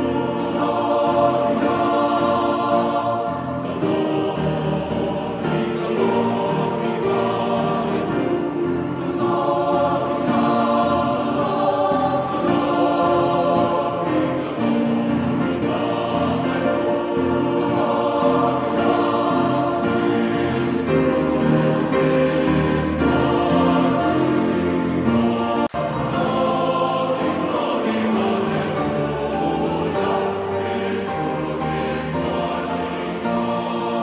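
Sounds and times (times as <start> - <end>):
choir singing slow chords: 0.0 - 34.0.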